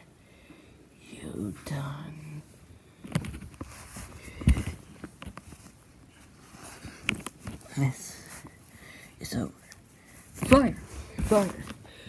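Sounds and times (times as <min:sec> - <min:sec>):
heavy thump: 0:10.4 - 0:11.8.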